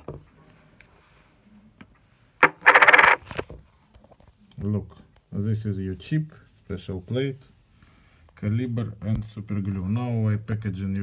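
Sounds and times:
small hard objects rattling: 2.4 - 3.3.

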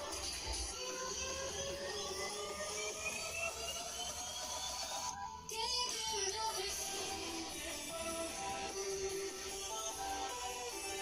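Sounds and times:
electronic music with rising pitches: 0.0 - 11.0.

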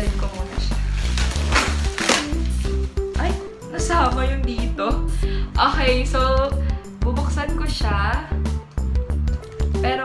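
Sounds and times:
background music with bass: 0.0 - 10.0
tape pulled off cardboard box: 0.9 - 2.9.

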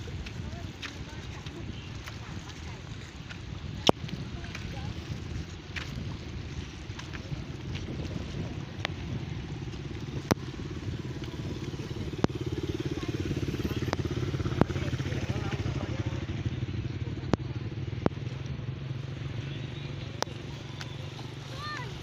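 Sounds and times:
steady low rumble: 0.0 - 22.0
motorcycle engine passing by: 7.9 - 22.0.

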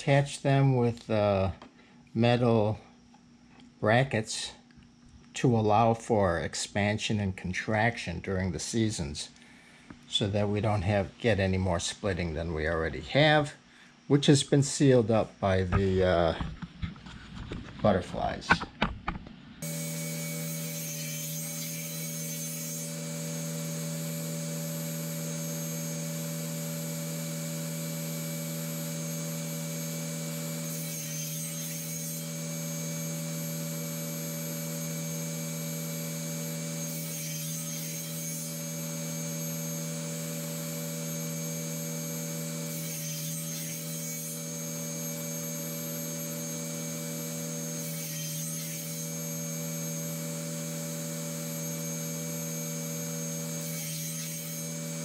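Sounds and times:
machine hum: 19.0 - 55.0.

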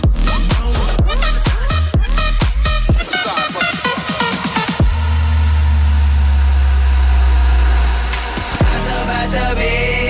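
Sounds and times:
deep bass note: 4.8 - 10.0.

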